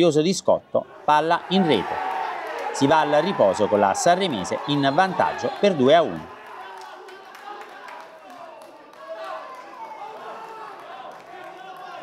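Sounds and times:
players and spectators shouting: 0.7 - 12.0.

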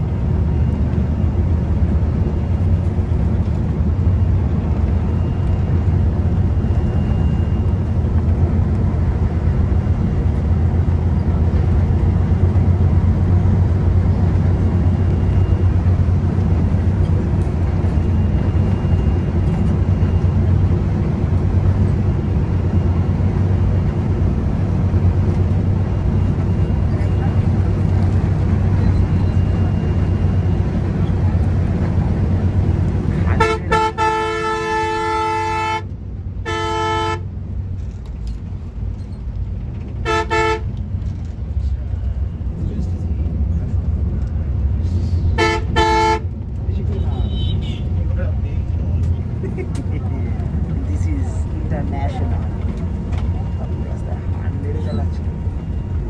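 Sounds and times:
bus engine and road noise: 0.0 - 56.0
bus horn blasts: 33.2 - 37.4, 40.0 - 40.8, 45.3 - 48.0.

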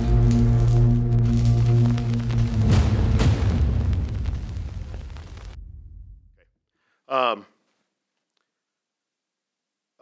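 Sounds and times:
deep boom hits: 1.2 - 6.4.

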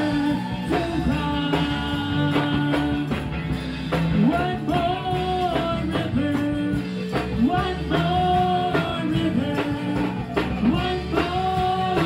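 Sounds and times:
band with keyboard and beat: 0.0 - 12.0.

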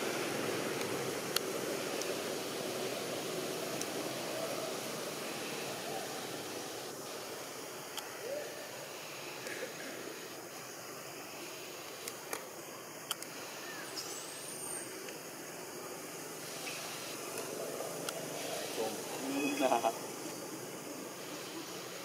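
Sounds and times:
forest ambience hiss: 0.0 - 22.0
faint clicks: 11.8 - 13.4.

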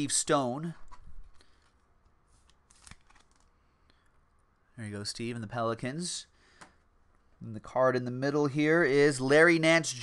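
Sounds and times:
trading cards rustling and clicking: 0.8 - 3.6.

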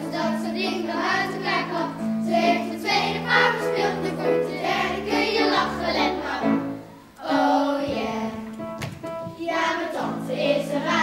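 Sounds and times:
children's choir singing: 0.0 - 11.0
keyboard accompaniment: 0.0 - 11.0.

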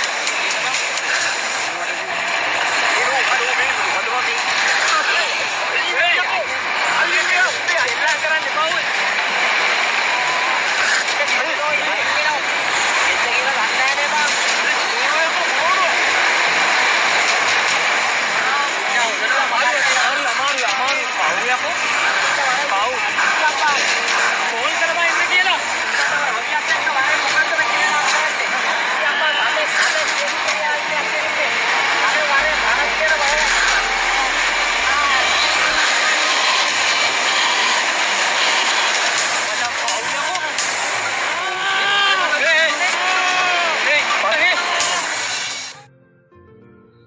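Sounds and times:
loud rushing noise: 0.0 - 45.8
people talking and calling out: 0.0 - 45.9.

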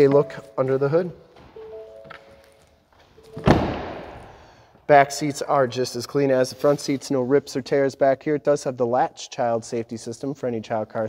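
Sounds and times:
truck door shutting: 3.4 - 4.2.

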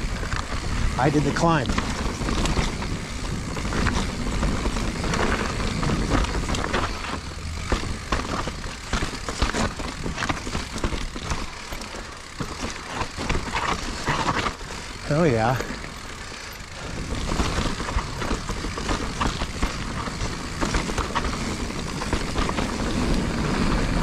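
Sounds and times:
bike rattling on rocks: 0.0 - 24.0
bike tyres crunching over stones: 0.0 - 24.0.

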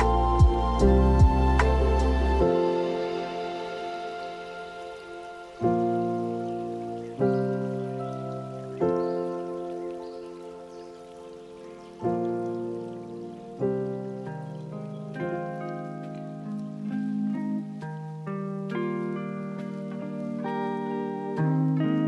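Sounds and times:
calm lofi music chords: 0.0 - 22.0.

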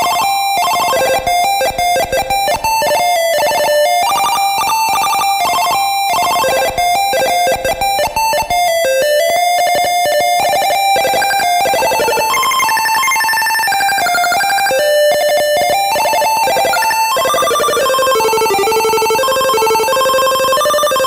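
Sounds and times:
fast clicking pulses: 10.1 - 21.0
square-wave beeping melody: 10.7 - 21.0.

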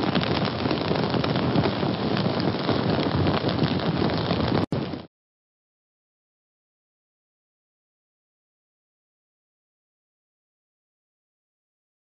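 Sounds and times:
flames burning with crackles: 0.0 - 5.1.

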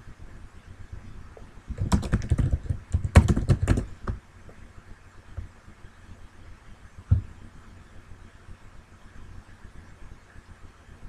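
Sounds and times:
keyboard typing: 1.7 - 4.2.

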